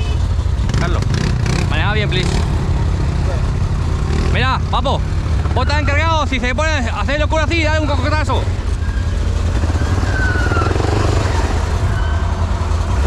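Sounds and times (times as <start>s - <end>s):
atv engine idling: 0.0s - 5.5s.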